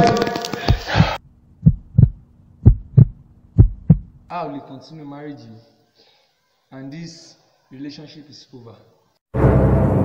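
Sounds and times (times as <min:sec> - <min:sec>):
heartbeat thumps: 0:00.7 - 0:04.3.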